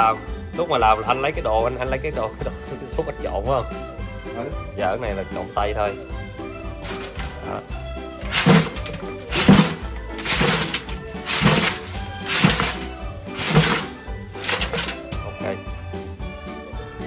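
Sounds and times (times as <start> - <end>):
background music: 0.0 - 17.0
pot shaking with wet rustle: 6.8 - 7.4, 8.2 - 15.1.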